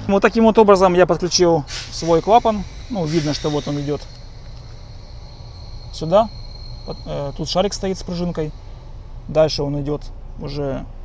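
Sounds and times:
car engine idling: 0:00.0 - 0:11.0
high turbo whine: 0:00.0 - 0:11.0.

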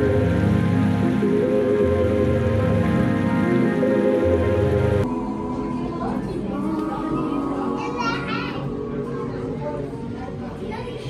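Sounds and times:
background music: 0:00.0 - 0:10.0
children's voices: 0:05.6 - 0:11.0.

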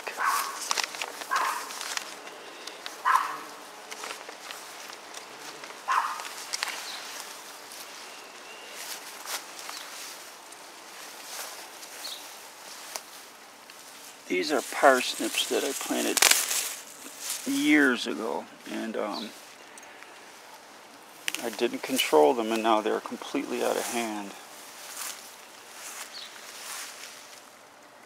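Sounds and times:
footsteps through tall grass: 0:00.0 - 0:27.6.

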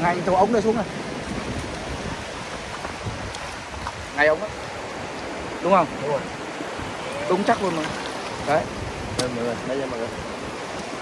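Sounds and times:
surf washing over sand: 0:00.0 - 0:11.0.

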